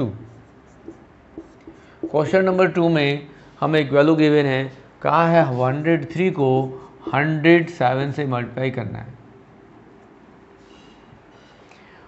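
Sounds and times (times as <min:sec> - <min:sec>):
marker pen scratching on paper: 0:00.0 - 0:02.2.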